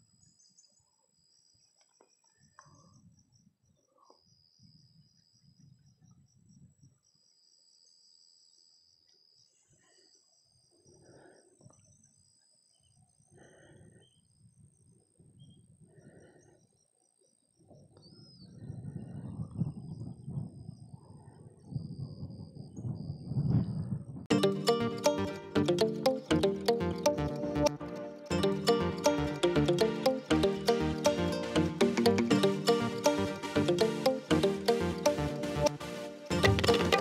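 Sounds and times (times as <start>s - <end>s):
wind rumble on microphone: 17.7s - 24.3s.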